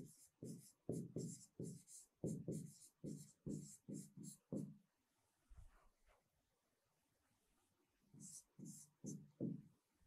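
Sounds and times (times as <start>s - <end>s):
stylus scratching on tablet: 0.0s - 4.6s.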